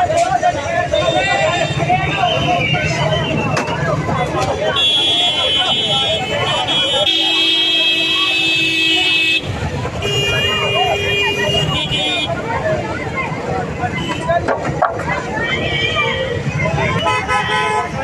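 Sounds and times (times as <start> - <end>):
crowd chatter: 0.0 - 18.0
street traffic: 0.0 - 18.0
vehicle horns blasting: 4.7 - 12.4, 16.8 - 18.0.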